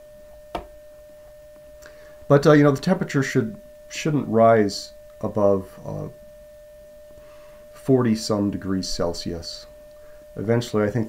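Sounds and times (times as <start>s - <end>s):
steady radio tone: 7.4s - 11.0s.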